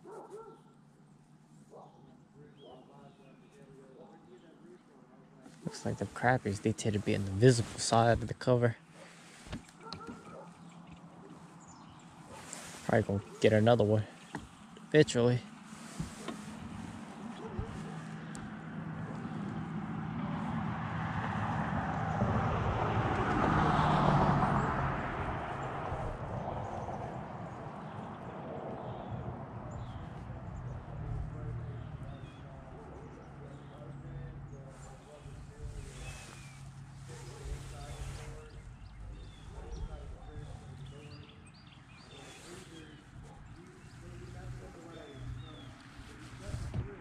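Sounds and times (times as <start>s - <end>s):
vehicle tyre and road noise: 5.4s - 47.0s.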